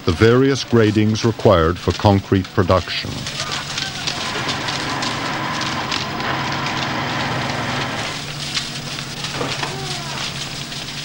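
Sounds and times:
machine humming: 0.0s - 11.0s
stone rattling along steel chutes: 0.0s - 11.0s.

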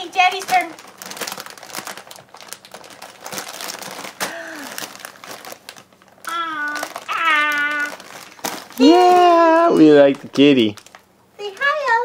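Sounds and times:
plastic snack bag crinkling: 0.0s - 12.0s
baby vocal sounds: 6.2s - 8.1s.

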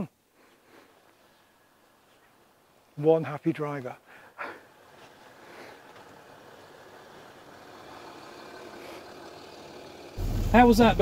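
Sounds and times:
car engine driving slowly: 0.5s - 11.0s.

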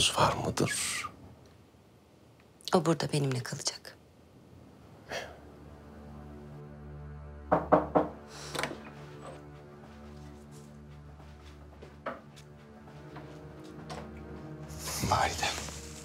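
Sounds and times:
wooden doors unlatched and opened: 7.6s - 9.5s.

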